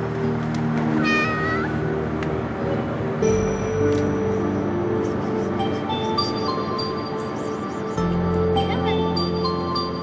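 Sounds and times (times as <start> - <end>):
soft background music: 0.0 - 10.0
cat meowing: 1.0 - 1.8.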